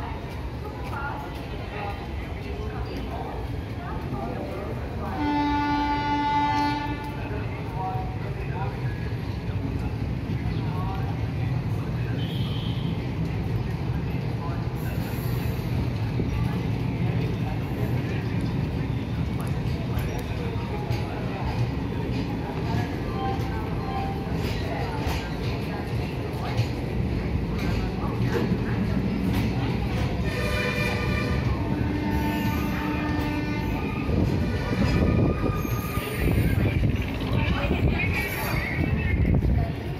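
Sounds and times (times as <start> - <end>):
train coaches rumbling: 0.0 - 39.9
train horn: 5.1 - 7.3, 30.2 - 35.2.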